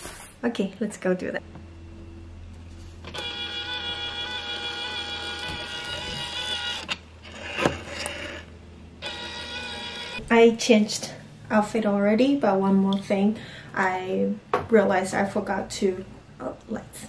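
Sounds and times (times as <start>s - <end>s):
label printer motor whine: 3.0s - 10.2s.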